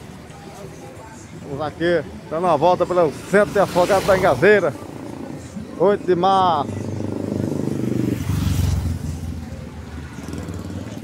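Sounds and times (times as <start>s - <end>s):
motorcycle engine passing by: 6.6s - 11.0s.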